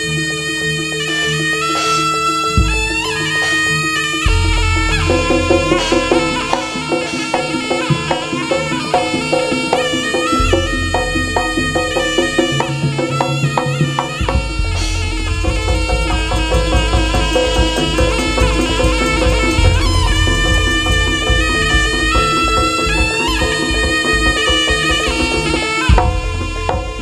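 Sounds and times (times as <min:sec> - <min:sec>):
shrill reedy wind melody: 0:00.0 - 0:27.0
drumming: 0:01.2 - 0:27.0
deep gong strokes: 0:02.6 - 0:08.2, 0:10.4 - 0:13.1, 0:14.4 - 0:24.2.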